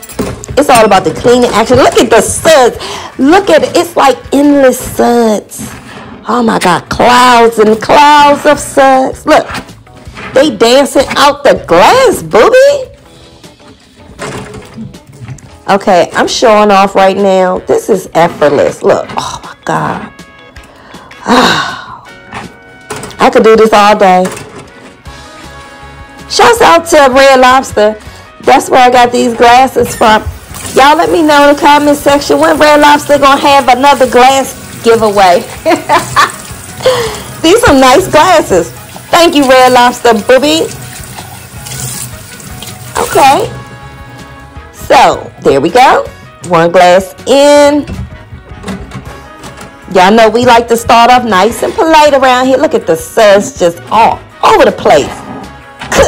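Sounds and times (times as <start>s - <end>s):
quiet background music: 0.0s - 56.0s
kitchen faucet running: 29.0s - 44.5s.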